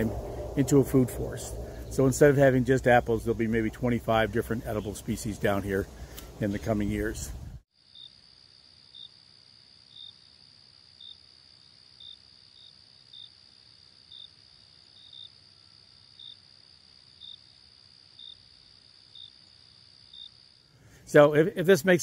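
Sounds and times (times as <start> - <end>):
insect trilling: 0.0 - 6.4
insect chirp: 0.0 - 22.0.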